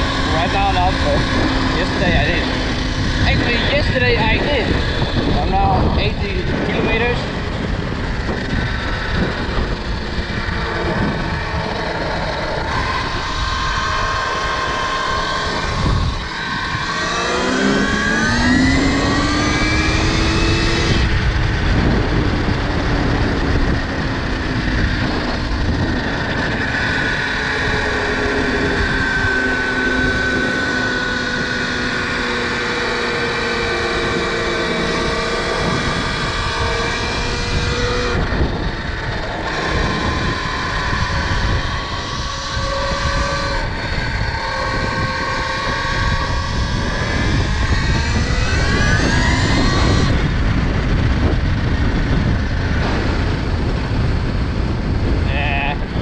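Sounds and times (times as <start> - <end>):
electric motorbike motor whine: 0.0 - 56.0
wind rush on microphone: 0.0 - 56.0.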